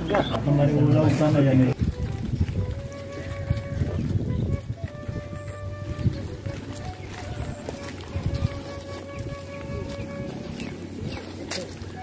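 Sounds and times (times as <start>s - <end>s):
faint distant music: 0.0s - 12.0s
footsteps on wet asphalt: 1.1s - 12.0s.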